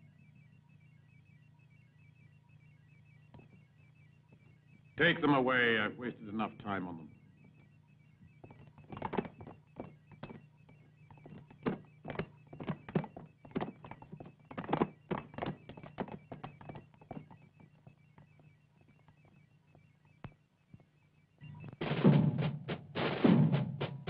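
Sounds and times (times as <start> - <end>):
fast electronic pipping: 0.0 - 21.9
steady low hum: 0.0 - 23.0
footsteps on hard floor: 8.4 - 10.4, 11.1 - 17.3.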